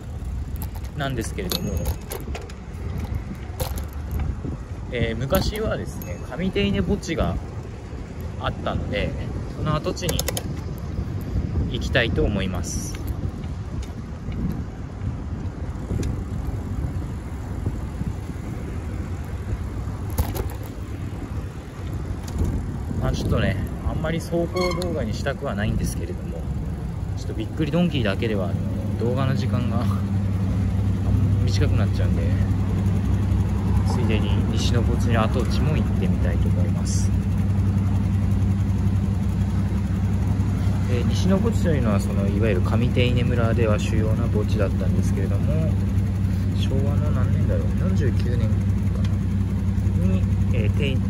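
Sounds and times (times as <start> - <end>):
road noise: 0.0 - 51.0
vehicle engines idling: 0.0 - 51.0
wind rumble on microphone: 0.0 - 51.0.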